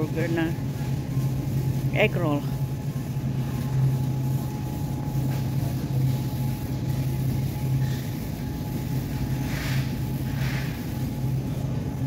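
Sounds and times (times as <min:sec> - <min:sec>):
refrigerated display cases humming: 0:00.0 - 0:12.0.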